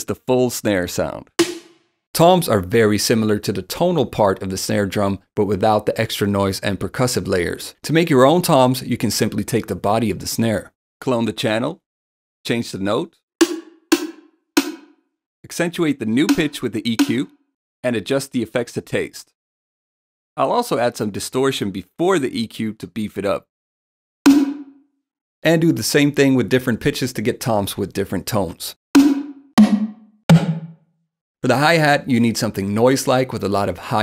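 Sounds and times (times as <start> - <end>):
tom drum hits: 1.4 - 1.8, 13.4 - 14.9, 16.3 - 17.2, 24.3 - 24.7, 29.0 - 30.8.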